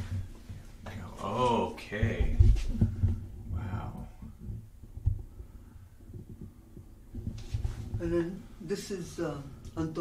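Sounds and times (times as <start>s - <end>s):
handling thumps and rumble: 1.8s - 8.6s.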